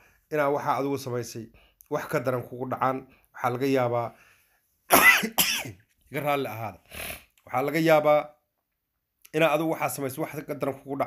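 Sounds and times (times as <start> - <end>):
man speaking: 0.3 - 4.2, 5.3 - 8.4, 9.3 - 11.0
man clearing throat: 4.9 - 5.8.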